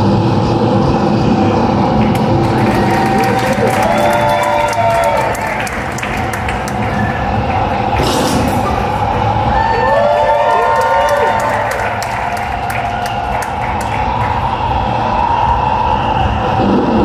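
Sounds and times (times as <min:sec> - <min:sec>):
audience cheering and clapping: 0:01.9 - 0:15.0
whoops: 0:02.5 - 0:07.2, 0:09.4 - 0:14.1.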